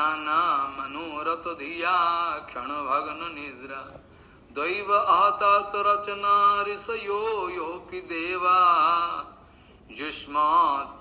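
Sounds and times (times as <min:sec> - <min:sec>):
man chanting melodically: 0:00.0 - 0:03.9.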